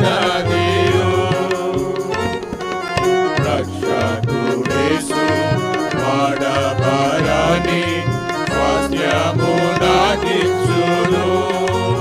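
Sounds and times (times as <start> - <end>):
electronic keyboard bass notes: 0.0 - 12.0
men singing a hymn: 0.0 - 12.0.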